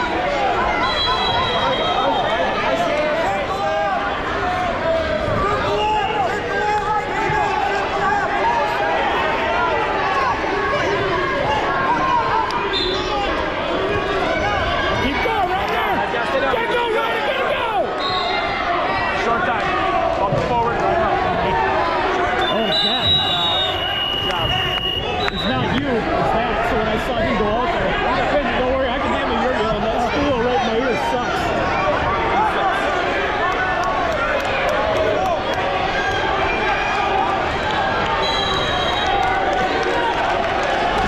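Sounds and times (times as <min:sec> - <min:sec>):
crowd talking and shouting: 0:00.0 - 0:41.0.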